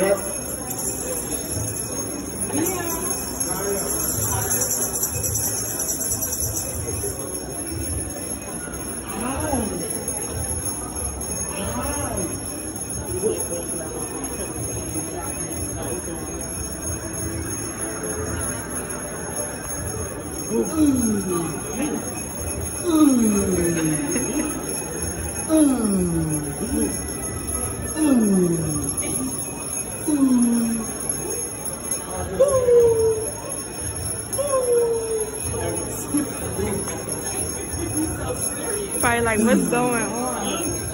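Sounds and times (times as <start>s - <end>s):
indistinct background voices: 0.0s - 40.9s
small bells shaken in christmas music: 0.0s - 40.9s.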